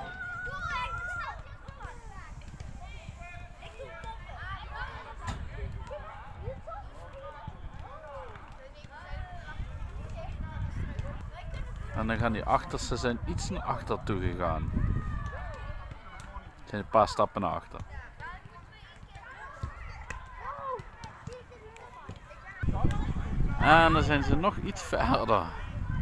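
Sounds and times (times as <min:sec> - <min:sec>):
distant children shouting: 0:00.0 - 0:02.0.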